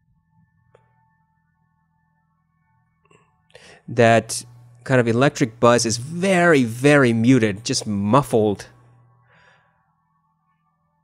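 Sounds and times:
faint breath: 0:03.5 - 0:03.9, 0:09.1 - 0:10.0.

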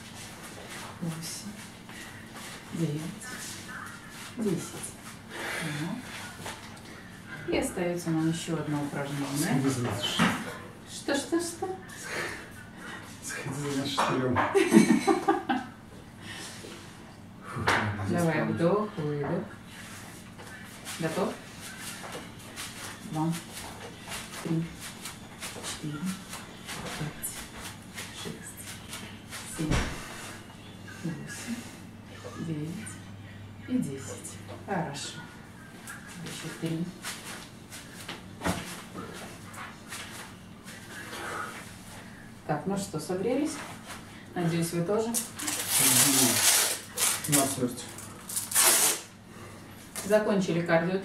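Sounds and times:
velcro straps tearing open: 0:45.2 - 0:47.6, 0:48.2 - 0:49.1.

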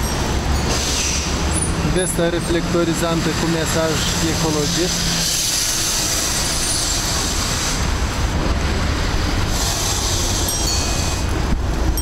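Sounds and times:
city traffic noise: 0:00.0 - 0:12.0
large truck passing close: 0:00.0 - 0:12.0
wind rumbling on microphone: 0:05.0 - 0:12.0.

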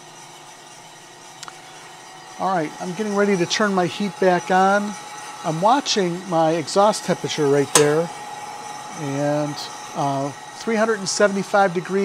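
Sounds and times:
coffee roaster drum humming: 0:01.7 - 0:12.0.

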